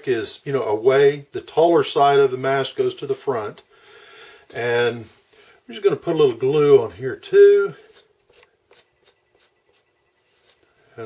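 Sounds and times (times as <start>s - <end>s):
glue nozzle scratching on wood: 7.8s - 10.6s.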